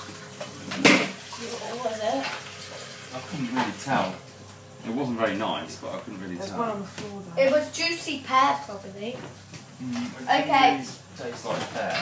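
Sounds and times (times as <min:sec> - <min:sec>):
child's voice: 0:07.4 - 0:09.2.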